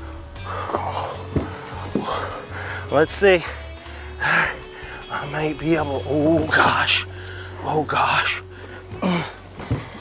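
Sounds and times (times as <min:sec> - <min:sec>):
background music with held notes: 0:00.0 - 0:10.0
low steady drone: 0:00.0 - 0:10.0.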